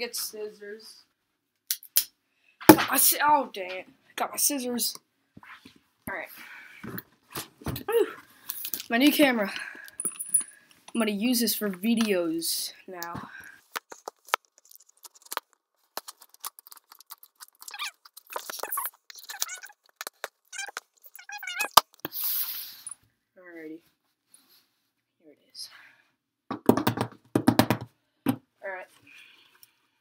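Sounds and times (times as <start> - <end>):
rasping tear: 13.8 - 22.4.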